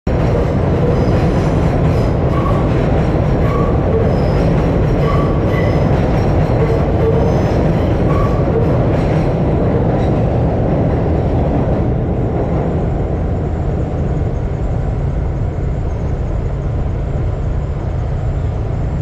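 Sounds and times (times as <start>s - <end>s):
subway train rumbling overhead: 0.1s - 19.0s
wheel squeals: 3.4s - 8.4s.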